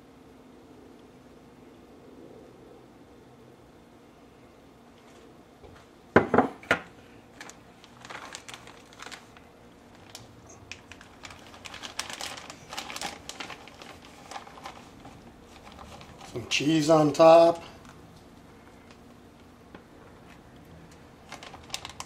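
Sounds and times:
plastic bag rustling: 7.0s - 18.0s, 20.2s - 22.0s.

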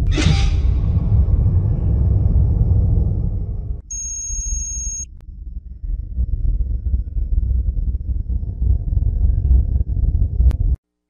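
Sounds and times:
rapidly pulsing electronic beep: 3.9s - 5.1s
low synthetic drone: 5.1s - 10.8s.

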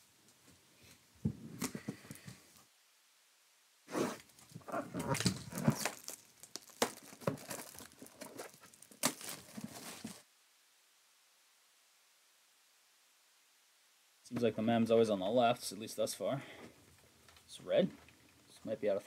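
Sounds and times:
cardboard boxes handled: 4.5s - 10.2s.

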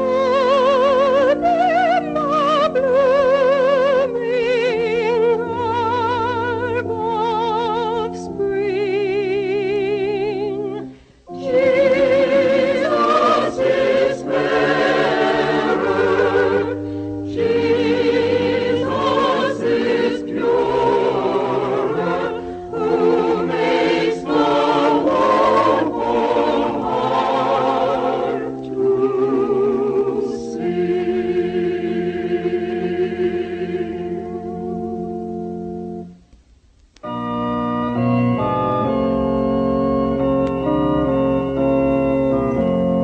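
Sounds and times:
choir singing a slow hymn: 0.0s - 35.4s
sustained lower accompaniment: 0.0s - 43.0s.

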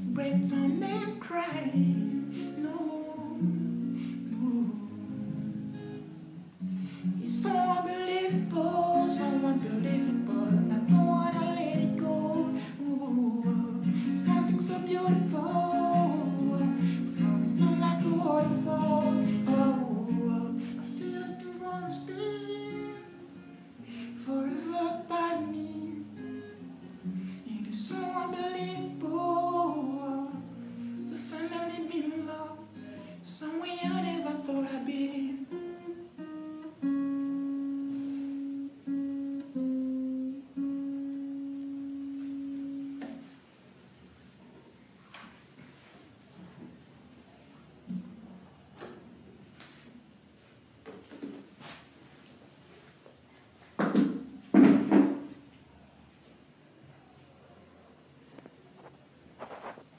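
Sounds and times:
man singing: 0.0s - 5.5s, 7.2s - 23.2s, 24.1s - 26.5s, 27.2s - 36.2s
acoustic guitar strummed and picked: 0.0s - 43.3s.

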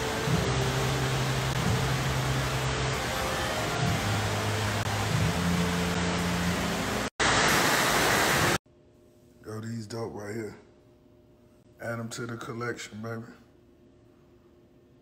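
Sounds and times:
fountain jets splashing: 0.0s - 8.6s
running water rushing: 0.0s - 8.6s.

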